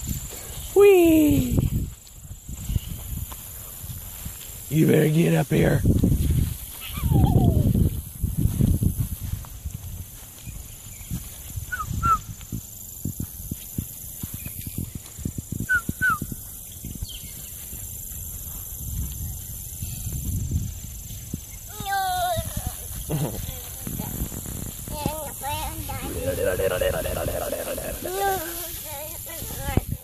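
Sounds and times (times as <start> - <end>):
footsteps in grass: 0.0 - 30.0
toddler squealing: 6.8 - 7.7.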